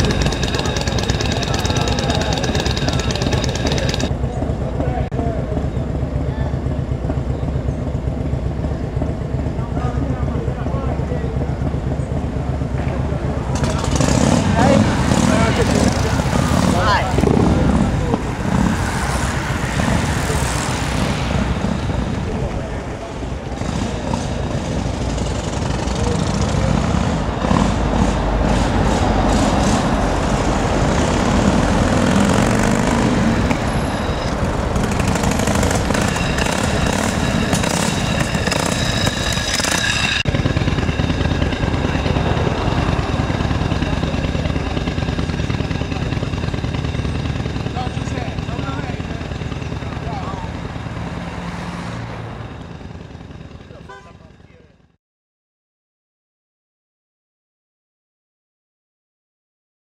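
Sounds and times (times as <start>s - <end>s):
people talking indistinctly: 0.0s - 7.8s, 8.7s - 18.7s, 47.6s - 50.8s
motorcycle engines: 0.0s - 55.0s
traffic: 0.0s - 55.0s
motorcycle passing by: 13.4s - 54.7s.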